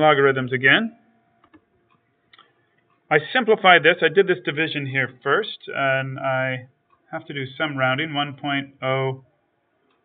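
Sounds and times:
faint ticks: 6.8s - 7.1s.

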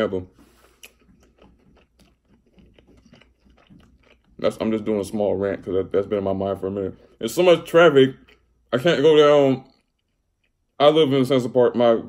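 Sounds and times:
chewing chicken wing: 0.4s - 6.7s.

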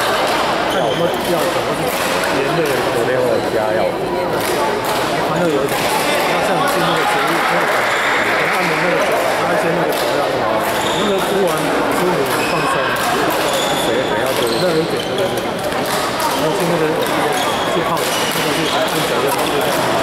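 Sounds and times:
hubbub of voices: 0.0s - 20.0s
court shoes squeaking: 0.3s - 2.4s, 10.6s - 20.0s
racket hitting shuttlecock: 13.0s - 13.6s.

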